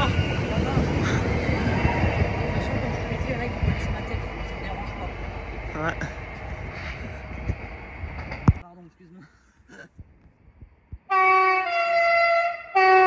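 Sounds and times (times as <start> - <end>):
electric train moving away: 0.0 - 8.6.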